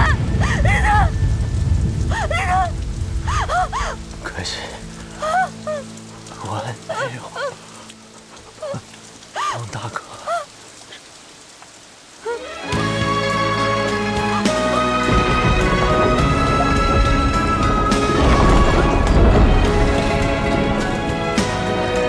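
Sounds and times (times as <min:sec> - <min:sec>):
heavy rain pouring: 0:00.0 - 0:22.0
soft low music tones: 0:00.2 - 0:10.8, 0:12.1 - 0:22.0.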